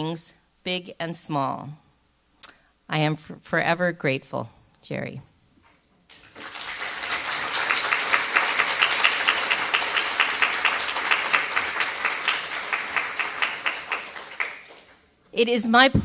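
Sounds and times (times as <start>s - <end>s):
audience applause: 6.1s - 15.0s.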